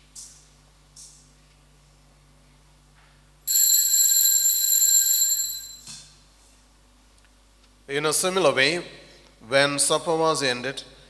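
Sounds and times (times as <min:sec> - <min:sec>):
altar bells ringing: 0:03.5 - 0:05.9.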